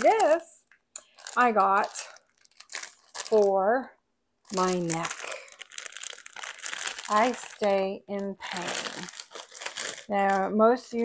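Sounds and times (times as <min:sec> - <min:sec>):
plastic bag crinkling: 0:00.0 - 0:03.7, 0:04.5 - 0:11.0.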